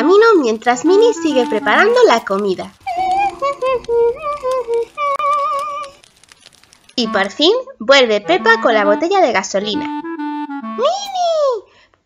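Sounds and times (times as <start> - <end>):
woman humming a tune: 0.0 - 6.0, 7.0 - 7.4, 8.2 - 11.3.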